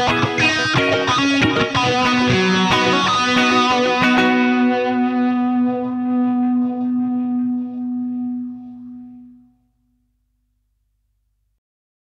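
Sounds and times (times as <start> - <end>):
guitar chord ringing out: 0.0 - 9.6.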